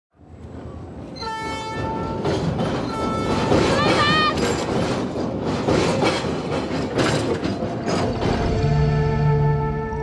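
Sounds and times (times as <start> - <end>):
moving train rumble: 0.1 - 10.0
locomotive horn blasts: 2.9 - 3.5, 8.6 - 10.0.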